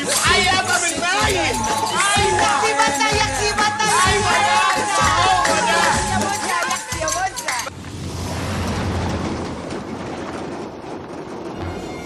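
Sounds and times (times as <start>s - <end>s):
truck passing on highway: 7.7s - 10.6s.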